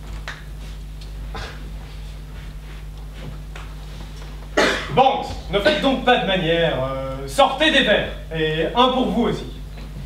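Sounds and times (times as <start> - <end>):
low room hum: 0.0 - 10.0
person coughing: 1.3 - 1.7, 4.6 - 5.0.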